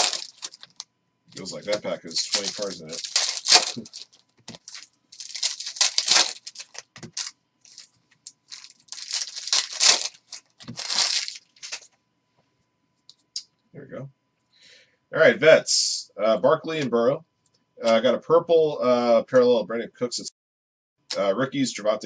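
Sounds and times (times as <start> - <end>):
foil wrapper tearing and crinkling: 0.0 - 0.8, 1.4 - 11.9.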